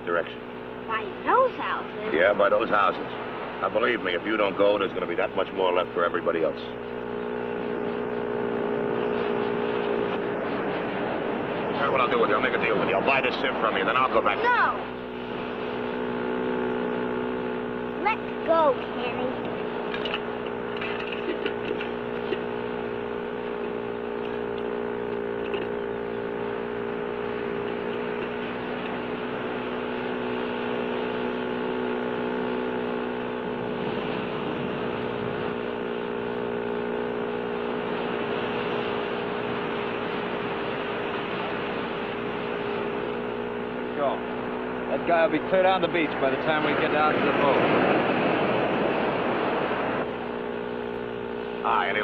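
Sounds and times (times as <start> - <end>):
engine droning steadily: 0.0 - 52.0.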